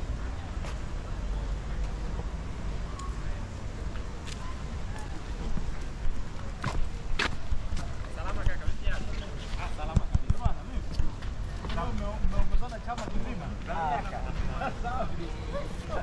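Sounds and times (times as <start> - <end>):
people talking: 7.7 - 11.0.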